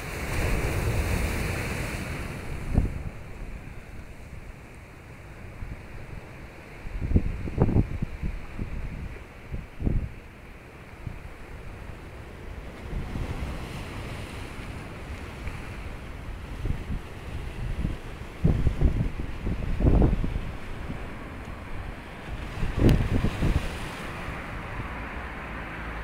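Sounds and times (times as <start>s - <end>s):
waves breaking on rocks: 0.0s - 26.0s
wind gusts on microphone: 0.0s - 26.0s.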